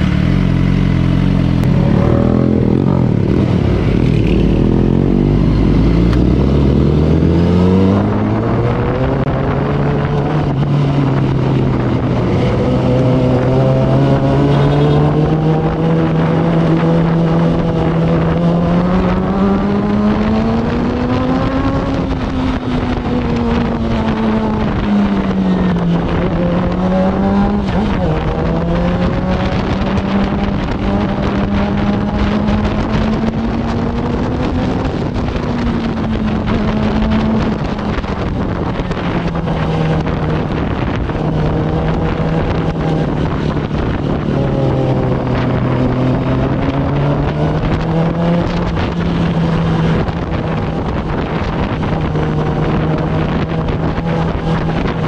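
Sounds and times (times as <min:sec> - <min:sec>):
motorcycle engine accelerating: 0:00.0 - 0:55.0
road noise: 0:00.0 - 0:55.0
wind noise: 0:00.0 - 0:55.0.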